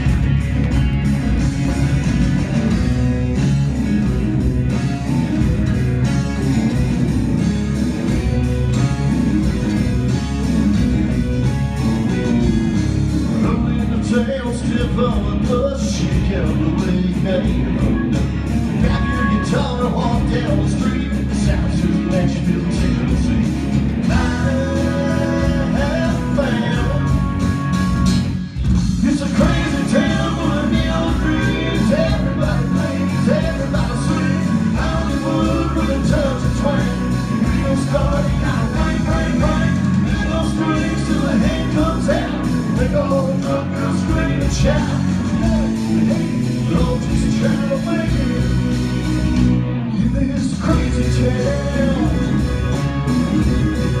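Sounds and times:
drum kit steady beat: 0.0s - 49.6s, 50.3s - 54.0s
electric bass: 0.0s - 54.0s
electric guitar: 0.0s - 54.0s.

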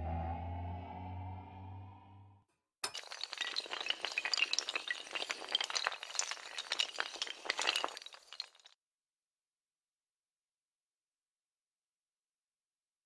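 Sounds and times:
hard tiles clattering: 2.8s - 8.7s.

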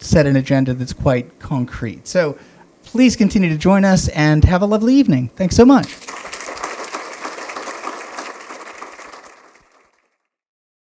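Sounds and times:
audience applauding: 5.8s - 10.2s.

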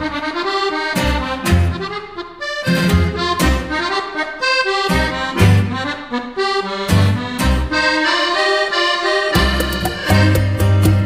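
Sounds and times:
accordion chords: 0.0s - 11.0s
low bass beat: 9.4s - 11.0s.

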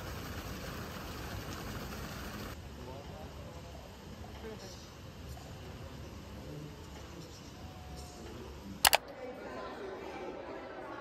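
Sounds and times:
low background murmur: 2.0s - 11.0s.

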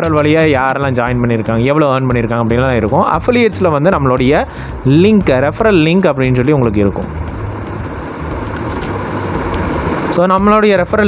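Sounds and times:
low hum: 6.9s - 10.5s.

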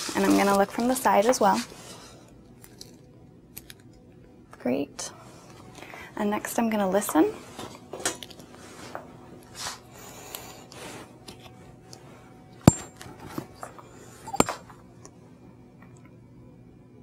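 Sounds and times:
metallic clinks: 12.7s - 13.0s.

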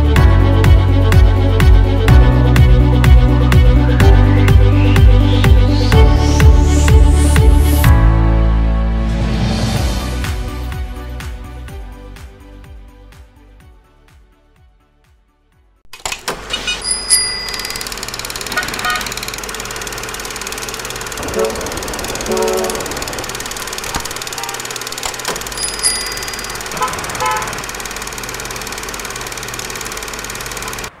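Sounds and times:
passing cars and motorbikes: 21.2s - 28.8s.

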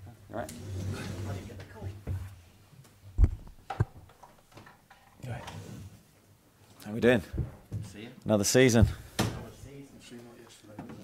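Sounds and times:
man speaking close to microphone: 6.8s - 11.0s.

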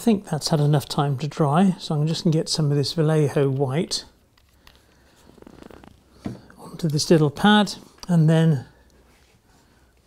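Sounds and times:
soft scratchy rustling: 4.5s - 8.0s, 9.0s - 10.0s.

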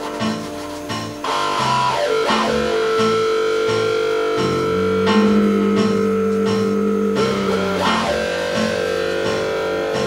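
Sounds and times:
electric guitar playing blues: 1.6s - 9.0s
low bass line: 3.6s - 8.8s.

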